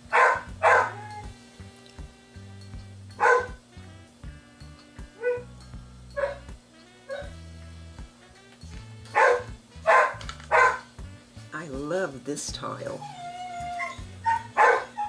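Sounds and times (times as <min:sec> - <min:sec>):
background music: 0:00.0 - 0:15.0
dog barking: 0:00.1 - 0:01.1, 0:03.2 - 0:03.6, 0:06.2 - 0:06.4, 0:09.1 - 0:10.9, 0:13.8 - 0:15.0.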